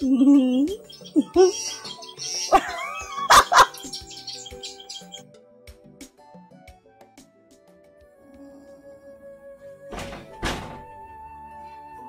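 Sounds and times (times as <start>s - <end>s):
woman laughing: 0.0s - 1.8s, 2.5s - 4.0s
woman speaking: 0.0s - 1.9s
soft background music: 0.0s - 12.0s.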